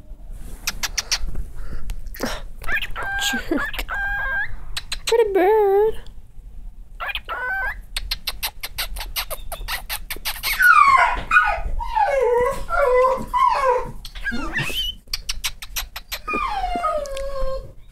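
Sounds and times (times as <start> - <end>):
animal clicking: 0.7 - 1.3, 4.8 - 5.1, 8.0 - 10.6, 14.0 - 16.4
animal chirps and calls: 2.7 - 5.1, 7.0 - 11.0, 14.0 - 16.6.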